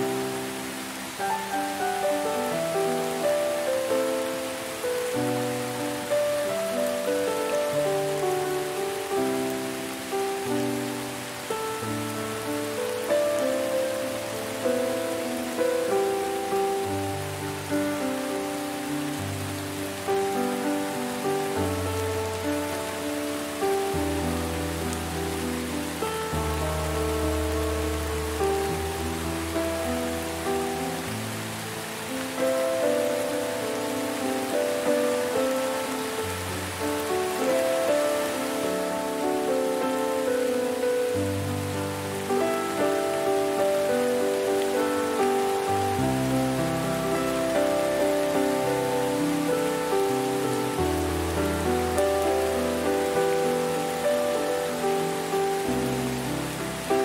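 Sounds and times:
gentle instrumental music: 0.0s - 57.0s
rain falling: 0.0s - 57.0s.

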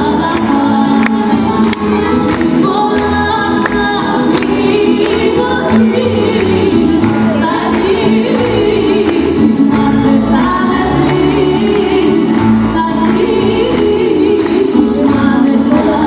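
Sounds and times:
person singing: 0.0s - 16.0s
string band playing: 0.0s - 16.0s.

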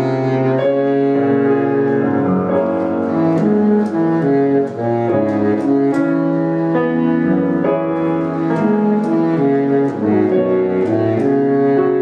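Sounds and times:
baritone saxophone melody: 0.0s - 12.0s
grand piano accompaniment: 0.0s - 12.0s.

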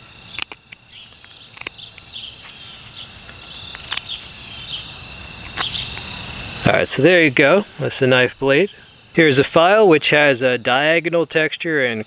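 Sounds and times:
insect chirping: 0.0s - 12.0s
knife blade snicking wood: 0.3s - 2.2s.

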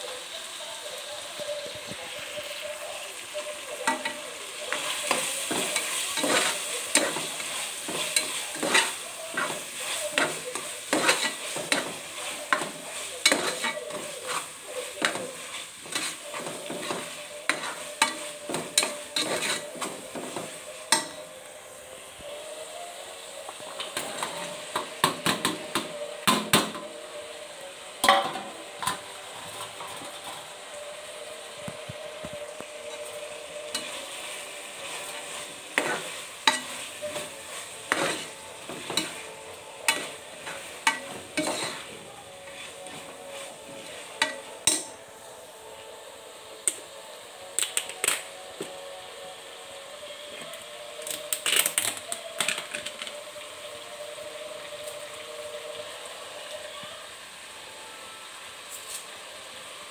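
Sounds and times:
vegetables sizzling: 0.0s - 59.9s
metal spoon clinking against pot: 44.2s - 45.0s.

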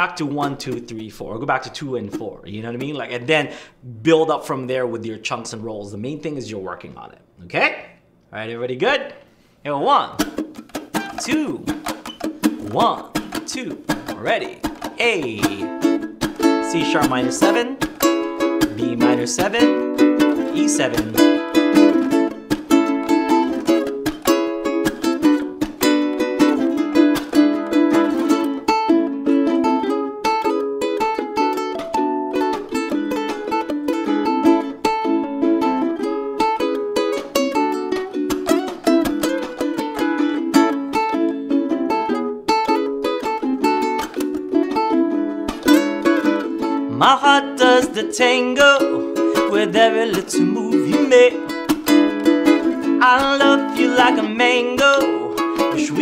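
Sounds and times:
ukulele strumming: 0.0s - 3.7s, 9.8s - 56.0s.

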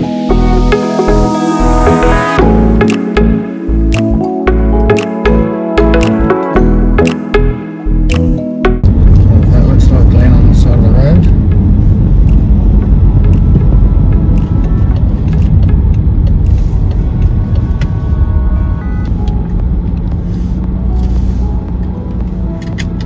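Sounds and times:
car road and engine rumble: 0.0s - 23.0s.

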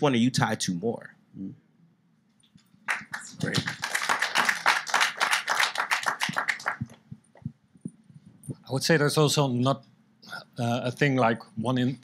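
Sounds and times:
hands clapping: 2.8s - 7.5s.

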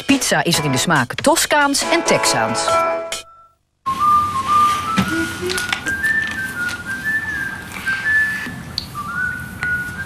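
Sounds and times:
person whistling a tune: 3.9s - 10.0s.

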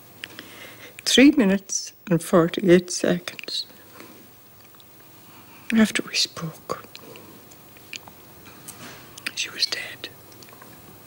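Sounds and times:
lip and mouth clicks: 6.8s - 8.2s.

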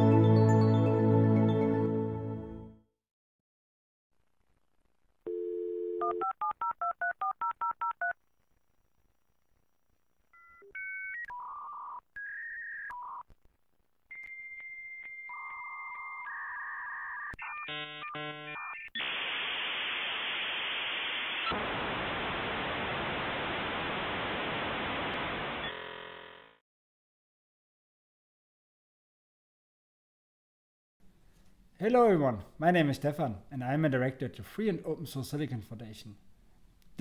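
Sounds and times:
telephone dial tone: 5.3s - 8.2s.

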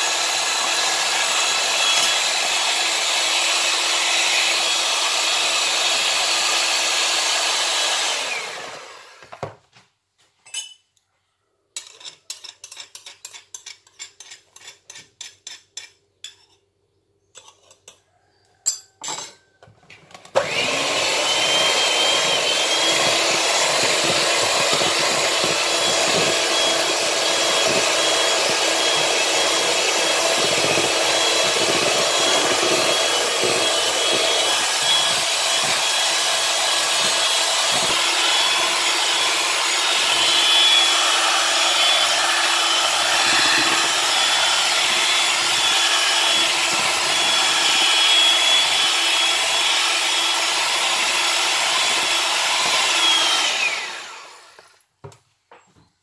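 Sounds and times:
electric hand mixer whining: 0.0s - 9.5s, 20.2s - 54.9s.

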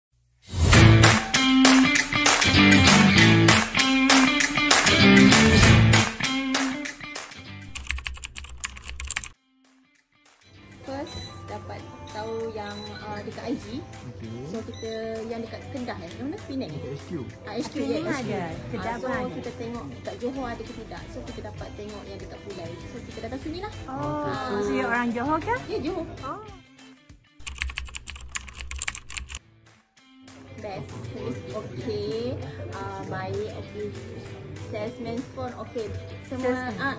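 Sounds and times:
keyboard key clicks: 7.7s - 9.3s, 27.4s - 29.4s
soft background music: 10.5s - 29.0s, 30.1s - 36.9s.

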